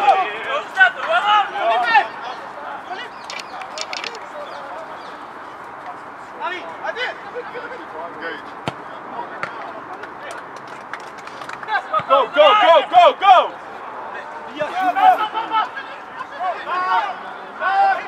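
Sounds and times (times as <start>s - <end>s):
players shouting: 0.0s - 8.0s, 11.6s - 18.0s.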